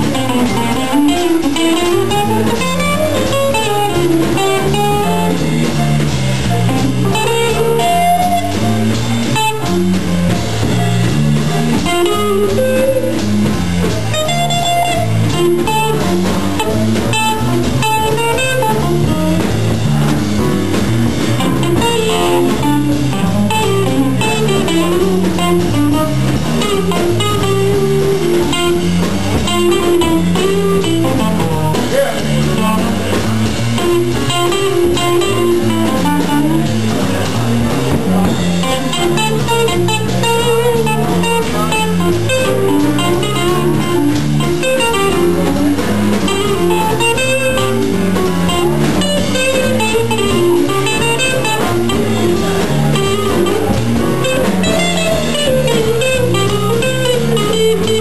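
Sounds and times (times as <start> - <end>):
jazz quintet playing: 0.0 - 58.0
plucked bass line: 0.0 - 58.0.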